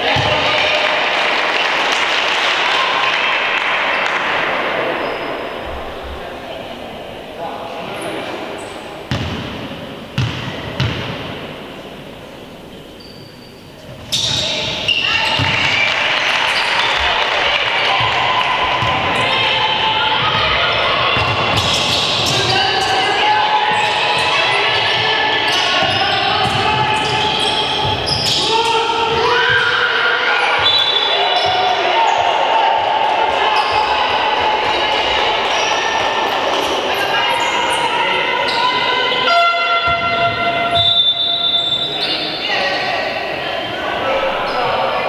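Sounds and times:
voices echoing in hall: 0:00.0 - 0:45.0
basketball bouncing on court: 0:09.1 - 0:11.5, 0:14.2 - 0:15.8, 0:20.2 - 0:22.8, 0:23.7 - 0:28.4.

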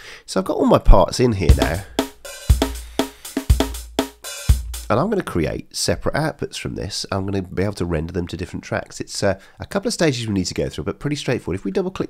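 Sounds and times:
programmed drum beat: 0:01.4 - 0:05.2.

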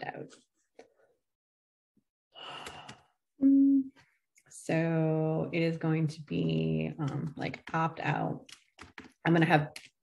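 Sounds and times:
woman humming: 0:03.4 - 0:04.0.

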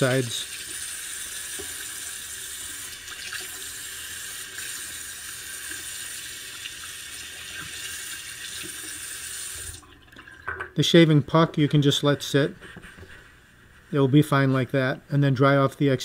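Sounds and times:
faucet water running into sink: 0:00.0 - 0:10.8.

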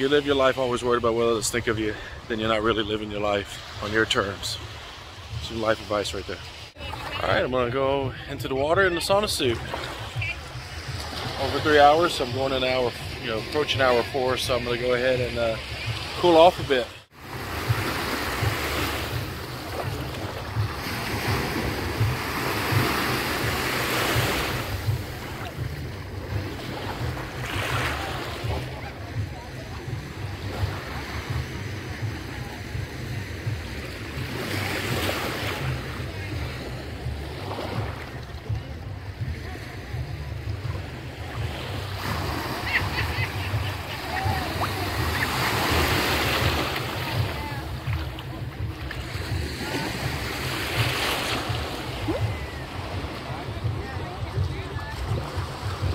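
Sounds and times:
small waves lapping on shore: 0:00.0 - 0:55.9.

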